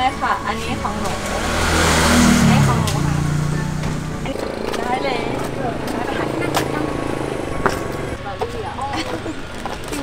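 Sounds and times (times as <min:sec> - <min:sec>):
vehicle engine passing by: 0:00.0 - 0:08.2.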